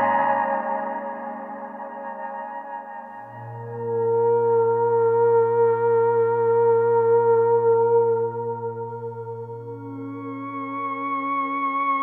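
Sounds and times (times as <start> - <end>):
synthesizer sustained note: 3.2 - 12.0.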